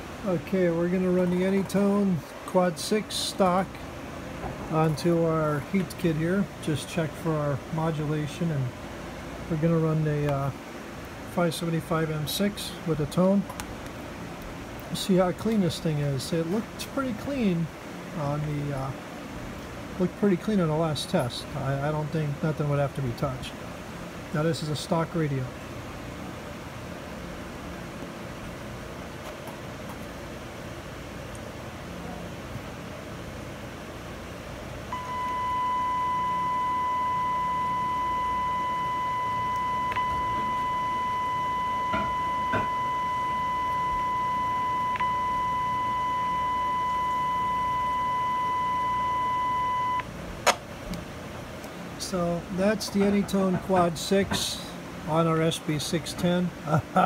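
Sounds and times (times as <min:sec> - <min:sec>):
low background hum: 0:00.0 - 0:57.0
steady test tone: 0:34.9 - 0:50.1.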